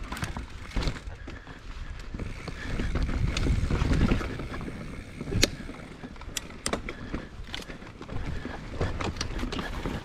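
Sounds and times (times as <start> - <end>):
bike clicking and rattling: 0.0 - 10.0
bike tyres rumbling on dirt: 0.0 - 10.0
wind on microphone: 2.2 - 5.8.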